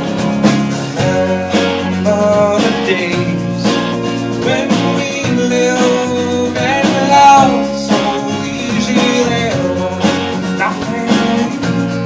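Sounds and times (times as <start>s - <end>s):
bass guitar: 0.0s - 12.0s
bending lead melody line: 0.0s - 12.0s
electric guitar: 0.0s - 12.0s
keyboard: 0.0s - 12.0s
strummed acoustic guitar: 0.0s - 12.0s.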